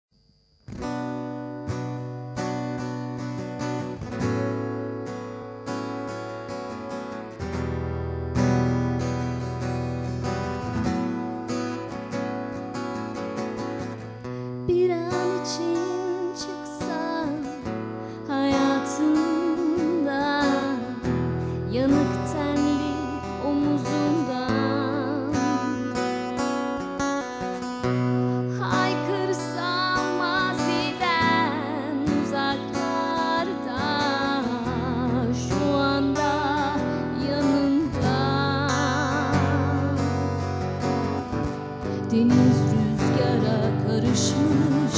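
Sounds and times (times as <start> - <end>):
acoustic guitar playing: 0.5 - 44.9
woman singing with vibrato: 14.6 - 26.4, 28.4 - 40.5, 41.8 - 44.9.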